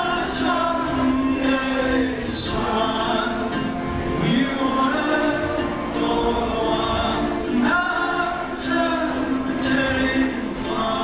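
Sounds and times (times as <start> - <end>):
accordion: 0.0 - 11.0
ukulele: 0.0 - 11.0.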